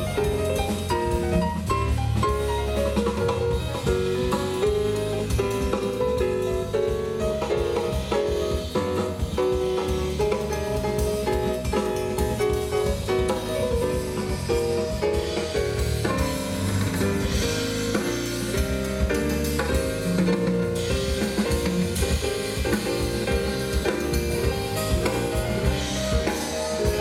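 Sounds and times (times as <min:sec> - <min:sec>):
live jazz band playing: 0:00.0 - 0:27.0.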